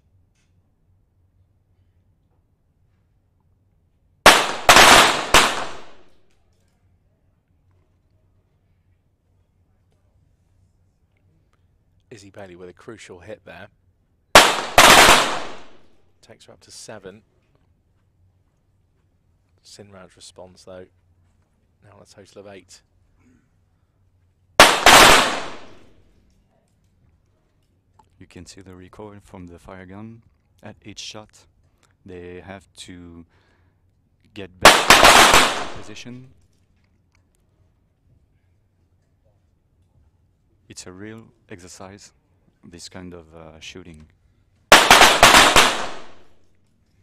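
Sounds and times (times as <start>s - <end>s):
pistol shots in a hall: 4.3s - 6.2s, 14.3s - 16.0s, 24.6s - 26.0s, 34.6s - 36.2s, 44.7s - 46.5s.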